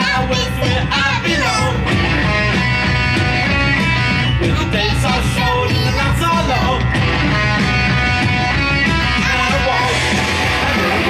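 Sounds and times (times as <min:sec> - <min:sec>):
electric guitar punk riff: 0:00.0 - 0:11.0.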